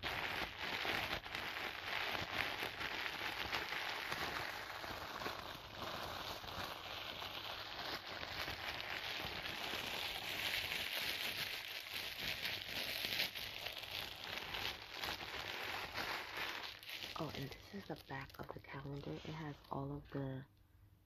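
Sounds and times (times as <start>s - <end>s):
plastic wrapping crinkling: 0.0s - 20.4s.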